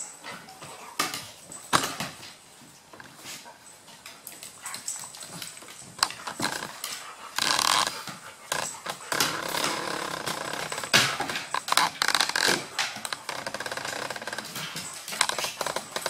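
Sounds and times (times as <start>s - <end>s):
dogs scuffling on wooden floor: 0.0s - 16.0s.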